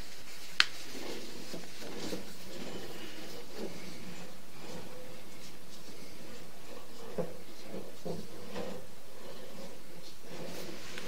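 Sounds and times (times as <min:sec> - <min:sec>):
background hiss: 0:00.0 - 0:11.0
faint knocks and rustles: 0:00.0 - 0:11.0.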